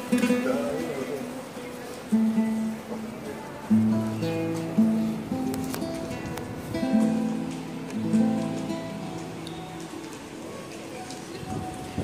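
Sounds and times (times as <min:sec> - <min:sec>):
guitar chords ringing: 0:03.6 - 0:10.1.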